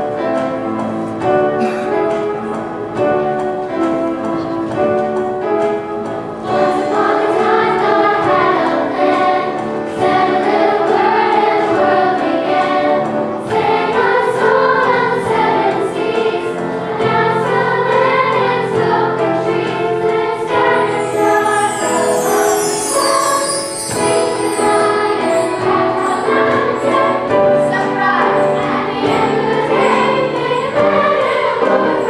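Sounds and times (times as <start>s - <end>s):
choir singing: 5.9s - 32.0s.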